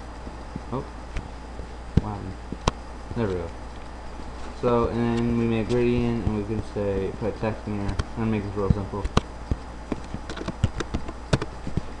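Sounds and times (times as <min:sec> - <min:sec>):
low electrical hum: 0:00.0 - 0:12.0
mouse and keyboard clicks: 0:09.9 - 0:11.8.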